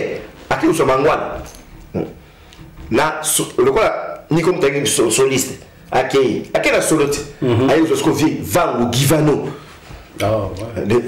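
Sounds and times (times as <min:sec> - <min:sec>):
man speaking: 0:00.0 - 0:02.2, 0:02.9 - 0:11.0.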